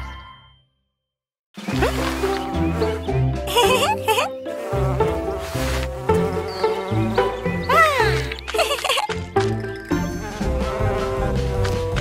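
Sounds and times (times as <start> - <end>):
light background music: 1.7 - 12.0
cartoon bee buzzing: 3.5 - 9.0.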